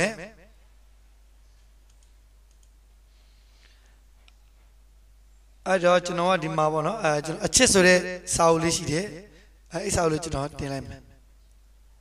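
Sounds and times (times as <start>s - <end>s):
low steady hiss and hum: 0.0s - 12.0s
computer mouse clicks: 1.6s - 2.8s.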